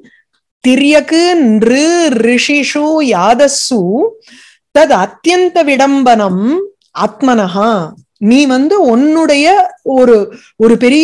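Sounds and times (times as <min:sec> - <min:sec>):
woman talking: 0:00.7 - 0:04.2, 0:04.8 - 0:11.0.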